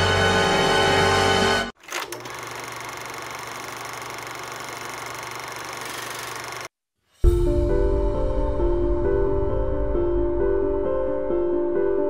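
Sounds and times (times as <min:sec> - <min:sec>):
film projector clattering: 0:01.8 - 0:06.7.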